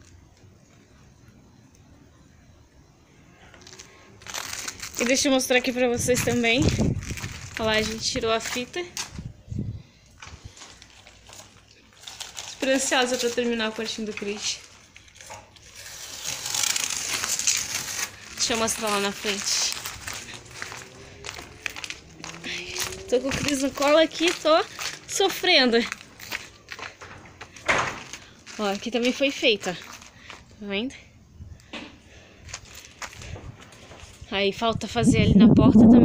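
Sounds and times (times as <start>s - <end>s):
crinkling rustling noise: 3.4s - 9.4s, 10.0s - 30.7s, 32.3s - 34.4s.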